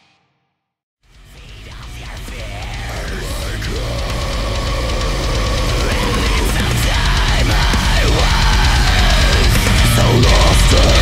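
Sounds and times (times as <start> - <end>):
deep heavy drone: 1.3 - 11.0.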